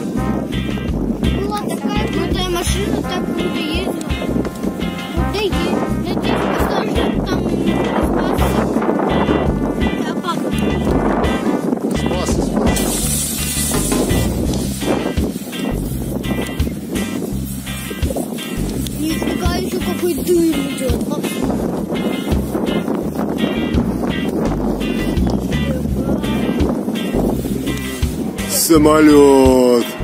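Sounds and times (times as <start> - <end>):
music with vocals and pulsing bass: 0.0 - 30.0.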